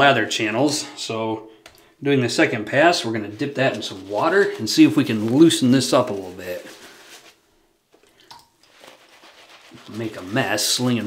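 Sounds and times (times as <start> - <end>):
man talking: 0.0 - 6.8, 9.8 - 11.0.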